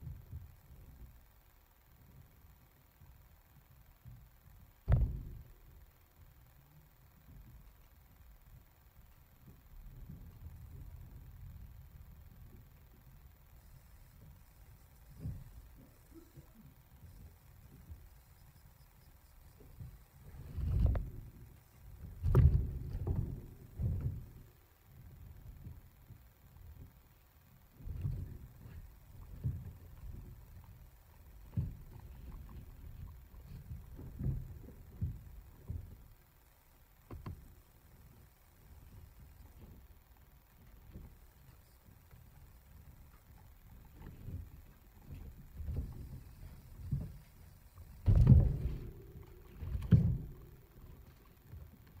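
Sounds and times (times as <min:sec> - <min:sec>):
low knocking and rustling: 0:04.8 - 0:05.6, 0:09.4 - 0:27.0, 0:27.6 - 0:52.0
soft bumps in cage: 0:22.0 - 0:24.5, 0:43.0 - 0:52.0.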